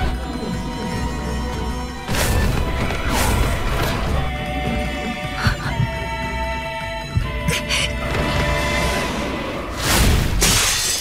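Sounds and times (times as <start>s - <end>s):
glass window shattering: 10.3s - 11.0s
glass shards raining down: 10.4s - 11.0s.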